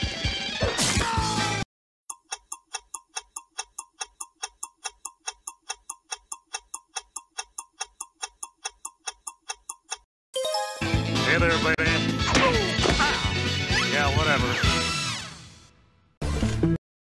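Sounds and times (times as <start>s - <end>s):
clock ticking: 2.1s - 10.1s.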